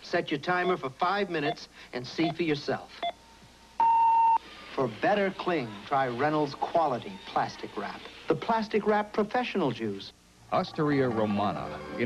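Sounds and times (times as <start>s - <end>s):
digital timer beep: 3.8s - 4.4s.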